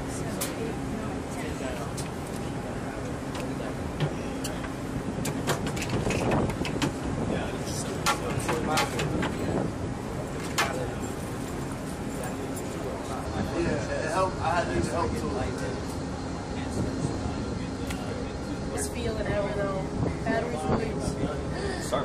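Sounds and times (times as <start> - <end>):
low machinery hum: 0.0 - 22.0.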